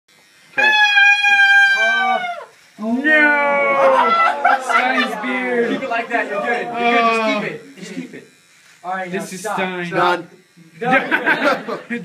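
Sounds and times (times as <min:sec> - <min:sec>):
electric hair clipper whining: 0:00.1 - 0:12.0.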